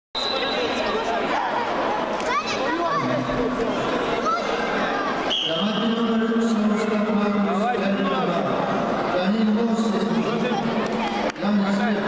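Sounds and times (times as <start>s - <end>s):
echoing chatter of many voices: 0.2s - 12.0s.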